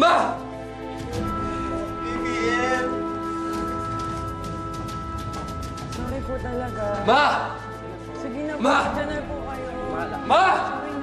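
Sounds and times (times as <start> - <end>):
dramatic music with held notes: 0.0 - 11.0.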